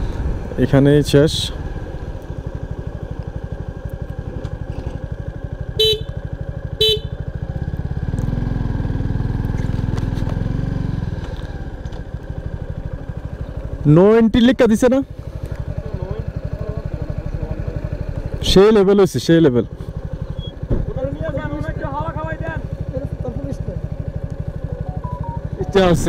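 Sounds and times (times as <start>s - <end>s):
motorcycle engine running: 0.0s - 26.0s
short horn beeps: 5.8s - 6.2s, 6.8s - 7.2s.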